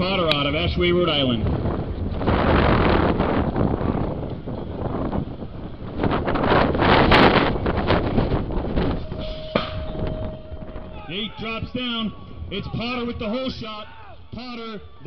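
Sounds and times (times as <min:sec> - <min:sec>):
crowd noise: 0:00.0 - 0:15.0
wind on microphone: 0:00.0 - 0:15.0
steady tone: 0:08.3 - 0:13.6.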